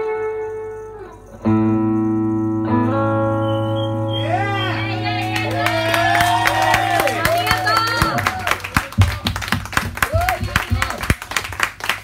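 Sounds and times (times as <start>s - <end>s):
voices calling out: 3.9s - 8.6s
audience clapping: 5.0s - 12.0s.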